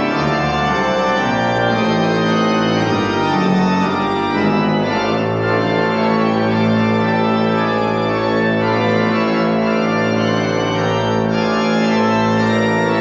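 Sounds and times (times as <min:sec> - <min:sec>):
organ playing held chords: 0:00.0 - 0:13.0.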